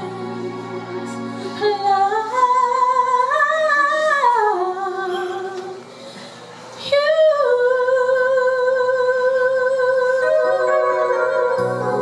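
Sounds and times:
woman singing into microphone: 0:00.0 - 0:05.9, 0:06.8 - 0:12.0.

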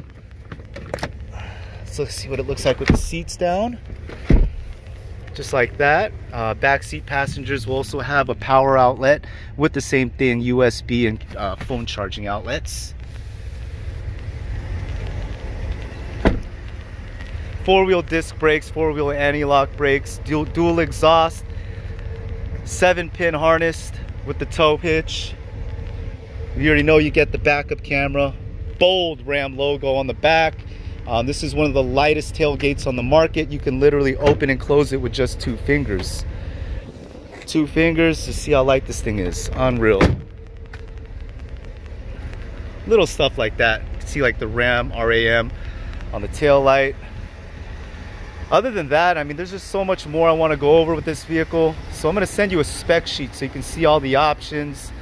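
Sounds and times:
phone being carried rumble: 0:00.0 - 0:08.6, 0:10.0 - 0:49.4.

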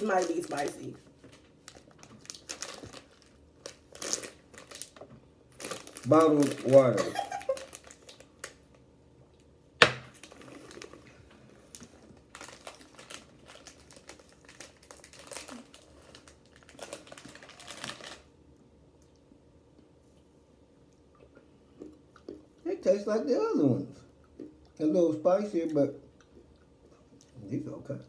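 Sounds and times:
plastic snack bag crinkling: 0:00.0 - 0:08.8, 0:10.1 - 0:18.3.

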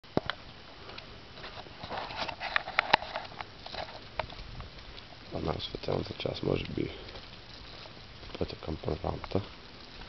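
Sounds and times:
footsteps on pavement: 0:00.1 - 0:10.0.

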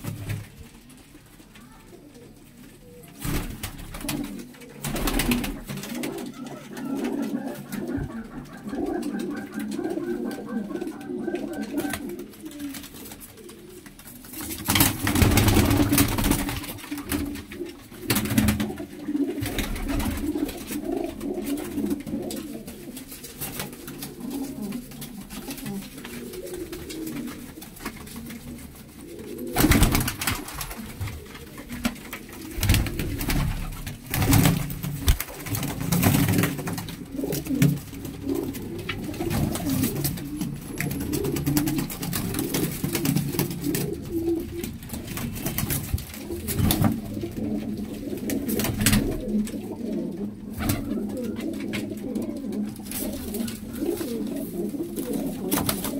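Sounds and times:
pigeons cooing: 0:00.0 - 0:55.9.

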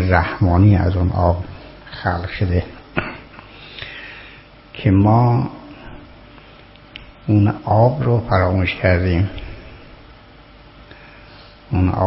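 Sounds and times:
man speaking: 0:00.0 - 0:02.8, 0:04.8 - 0:06.0, 0:07.2 - 0:09.5, 0:11.7 - 0:12.0.

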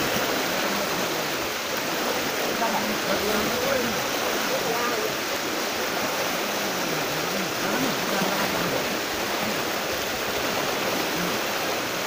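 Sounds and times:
turbulent water rushing: 0:00.0 - 0:12.0.

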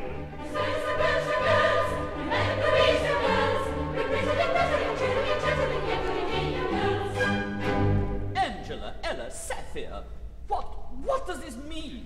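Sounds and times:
chorus singing: 0:00.0 - 0:08.2
orchestral accompaniment: 0:00.0 - 0:08.5.

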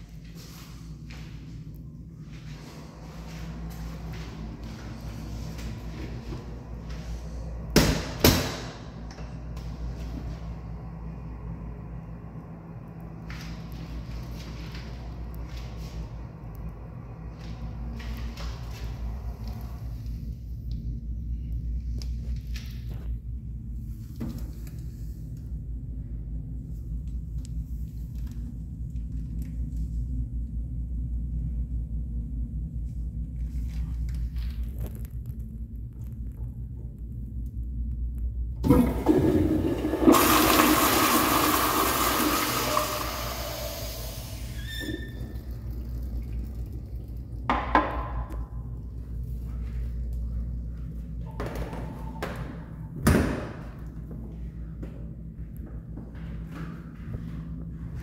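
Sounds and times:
low room rumble: 0:00.0 - 0:58.0.

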